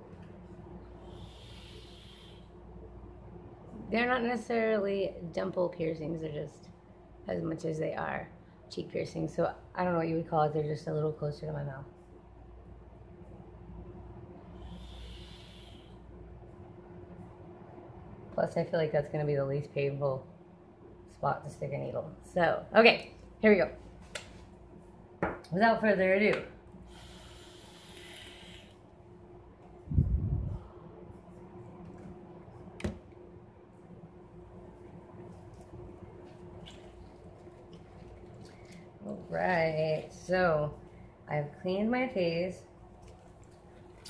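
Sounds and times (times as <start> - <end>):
low steady hum: 0.0 - 44.0
breath hiss: 1.0 - 2.6, 14.5 - 16.1, 26.9 - 28.8.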